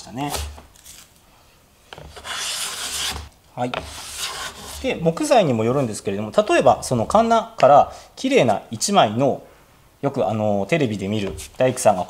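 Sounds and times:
hand plane shaving wood: 0:02.1 - 0:04.8.

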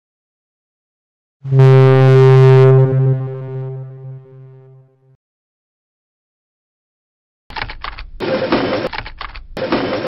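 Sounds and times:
deep horn-like synthesized tone: 0:01.4 - 0:05.2.

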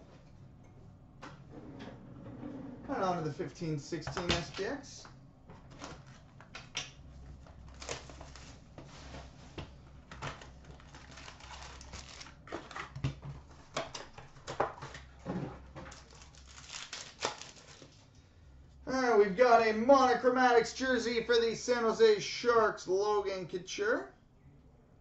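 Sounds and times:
foil packs rustling and crinkling: 0:07.6 - 0:09.4, 0:10.0 - 0:18.0.

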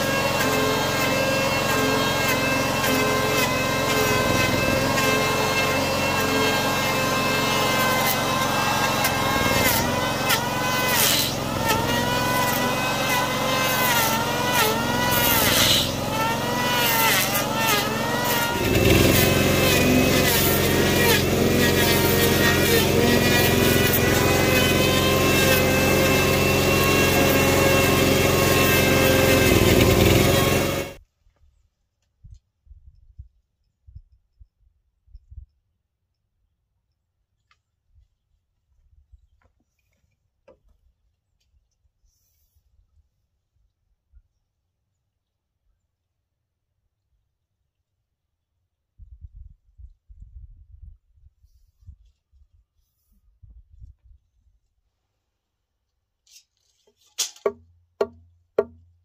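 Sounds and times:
electric planer shaving wood: 0:00.0 - 0:31.0
generator running: 0:00.0 - 0:31.0.

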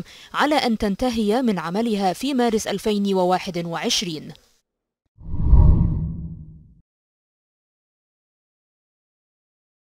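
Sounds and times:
deep whoosh: 0:05.2 - 0:06.7.

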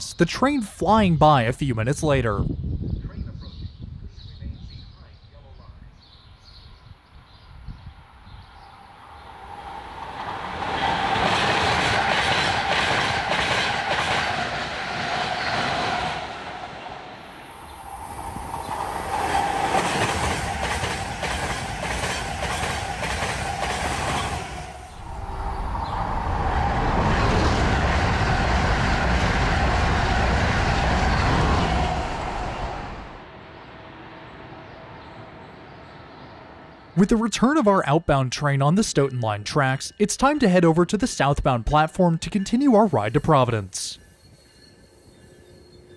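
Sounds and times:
train passing at speed: 0:06.2 - 0:37.0
wheels clickety-clack over rails: 0:10.1 - 0:16.3, 0:19.0 - 0:24.6.

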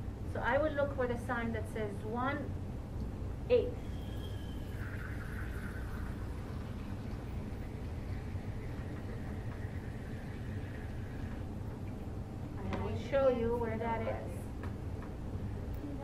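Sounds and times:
low room hum: 0:00.0 - 0:16.0
water trickling into cup: 0:03.9 - 0:11.5.

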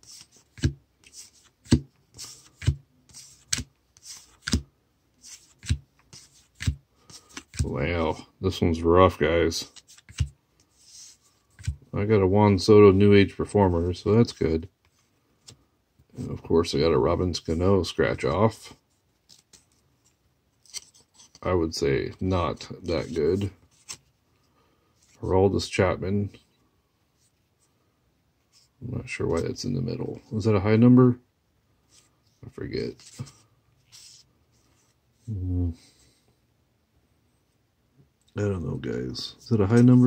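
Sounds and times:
cards sliding: 0:00.0 - 0:07.7, 0:09.6 - 0:11.9, 0:19.2 - 0:21.4, 0:22.2 - 0:24.1, 0:32.8 - 0:34.9.

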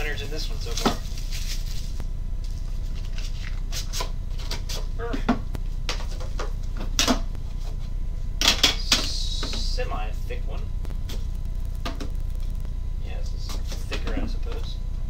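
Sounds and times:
steady low hum: 0:00.0 - 0:15.0
plastic shrink wrap crinkling: 0:00.6 - 0:04.0.

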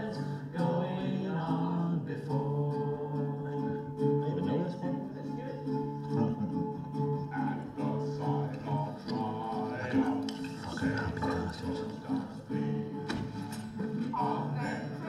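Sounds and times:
acoustic guitar playing: 0:00.0 - 0:15.0
voices singing: 0:00.0 - 0:15.0.

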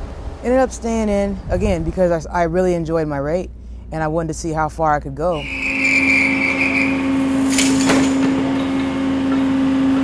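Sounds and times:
machinery hum: 0:00.0 - 0:10.0
high held tone: 0:05.3 - 0:07.8.

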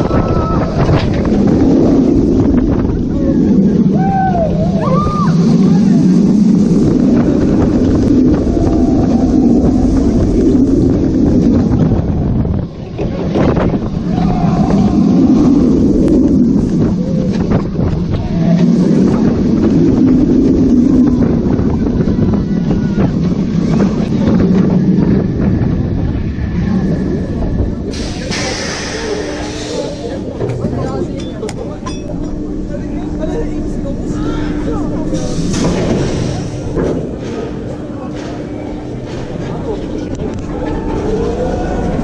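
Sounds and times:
roller coaster wheels rumbling: 0:00.0 - 0:42.0
wind buffeting microphone: 0:00.0 - 0:42.0.

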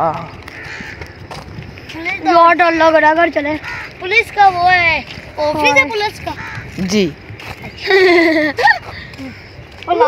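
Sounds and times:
footsteps on dirt: 0:00.0 - 0:10.0
wind on microphone: 0:00.0 - 0:10.0.

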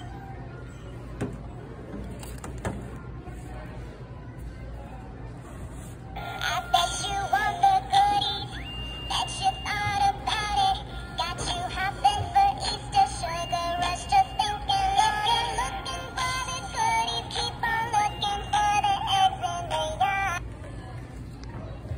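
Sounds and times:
toy singing over music: 0:06.2 - 0:20.4.

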